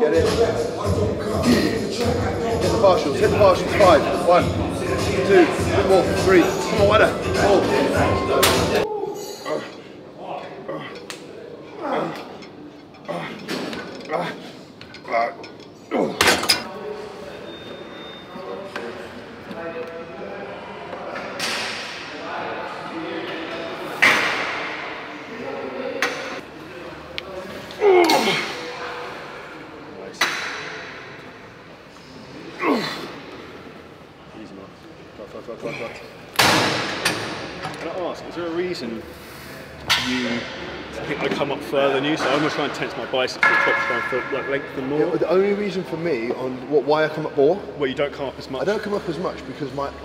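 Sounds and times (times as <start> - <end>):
indistinct voices: 0.0 - 33.8.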